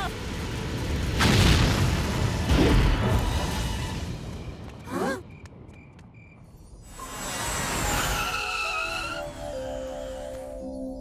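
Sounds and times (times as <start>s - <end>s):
low rumbling rocket blast: 0.0s - 4.6s.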